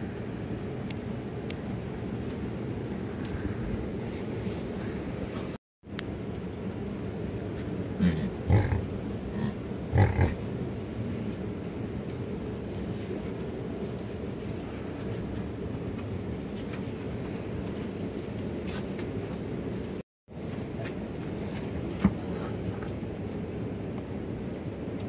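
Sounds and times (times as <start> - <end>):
steady background noise: 0.0 - 25.0
yak calves grunting: 8.0 - 10.5.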